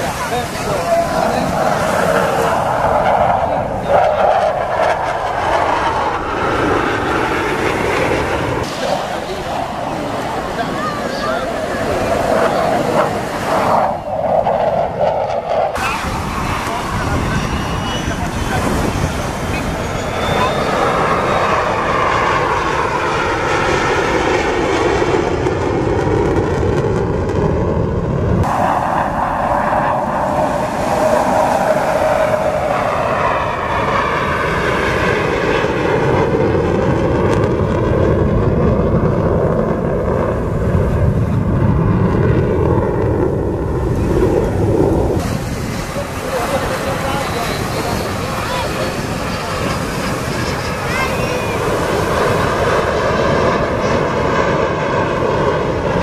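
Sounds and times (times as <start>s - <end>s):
jet flying past: 0.0s - 56.0s.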